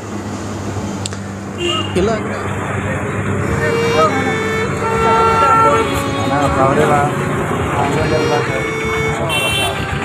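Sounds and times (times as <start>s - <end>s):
vehicle horns: 1.5s - 2.3s, 2.9s - 10.0s
people talking: 1.9s - 10.0s.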